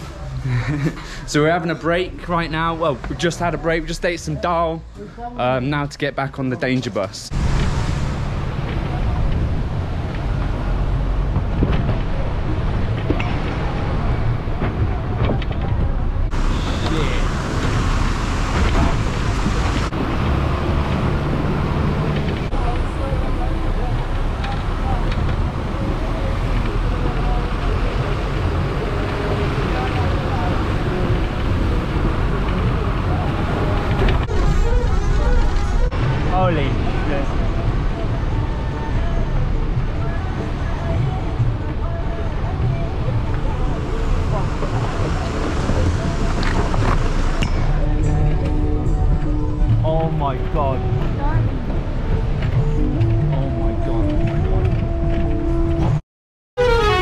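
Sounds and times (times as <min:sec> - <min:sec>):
bus engine drone: 0:00.0 - 0:56.0
road and body noise: 0:00.0 - 0:56.0.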